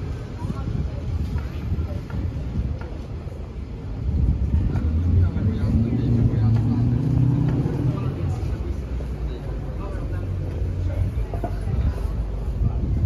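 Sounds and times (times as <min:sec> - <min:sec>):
passers-by talking: 0:00.0 - 0:13.0
vehicle engine hum: 0:04.2 - 0:11.7.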